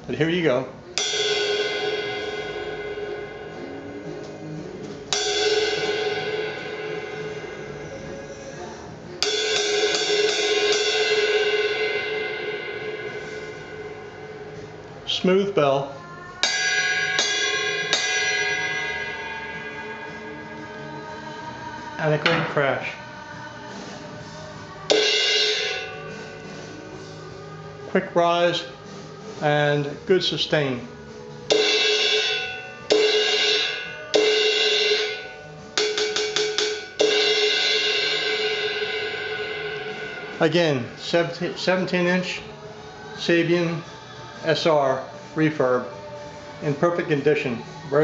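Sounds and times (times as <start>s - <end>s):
cymbal bell struck with drumstick: 1.0s - 14.8s, 16.4s - 21.4s, 24.9s - 27.2s, 31.5s - 42.4s.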